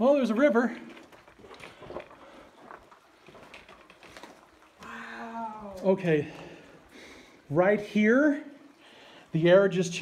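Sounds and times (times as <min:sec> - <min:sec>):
footsteps on rocky floor: 0:00.7 - 0:04.7.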